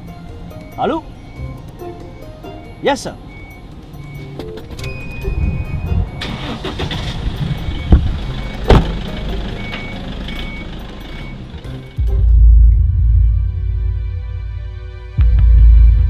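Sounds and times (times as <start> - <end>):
car engine starting and running: 0.0 - 16.0.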